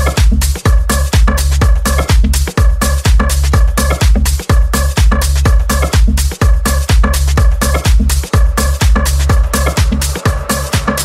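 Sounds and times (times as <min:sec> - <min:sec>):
steady kick drum: 0:00.0 - 0:11.0.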